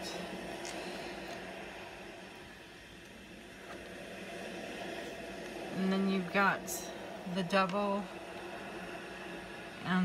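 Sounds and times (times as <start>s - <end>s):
room noise hiss and hum: 0.0s - 10.0s.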